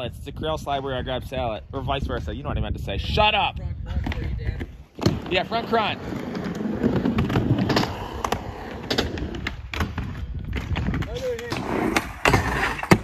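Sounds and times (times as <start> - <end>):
skateboard wheels rolling on concrete: 0.0 - 13.0
skateboard clacks: 4.0 - 13.0.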